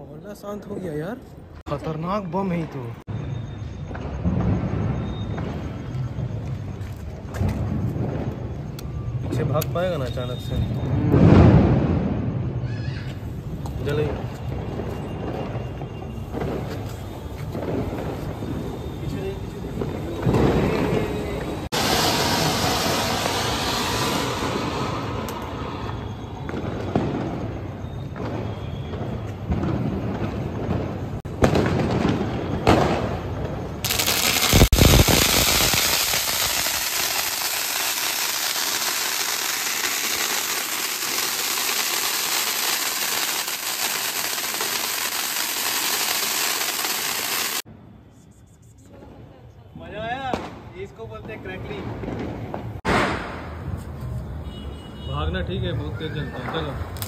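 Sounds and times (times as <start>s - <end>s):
fireworks crackling: 0.0s - 47.7s, 56.5s - 57.0s
loud firework bang: 10.8s - 12.7s, 19.7s - 47.6s, 51.3s - 53.7s
fountain firework hissing: 17.0s - 26.4s, 33.8s - 47.6s.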